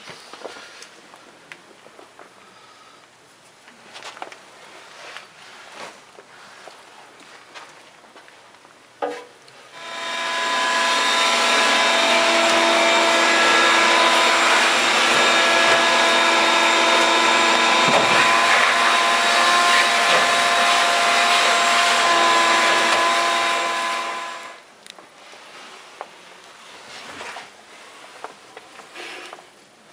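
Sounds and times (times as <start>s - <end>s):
vacuum cleaner whining: 9.7s - 24.6s.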